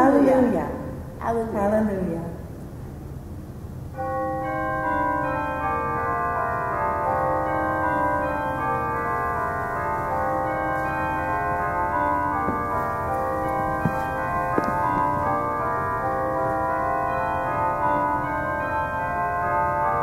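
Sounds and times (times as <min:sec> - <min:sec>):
bells chiming music: 0:04.0 - 0:20.0
soft knocks: 0:12.3 - 0:15.5.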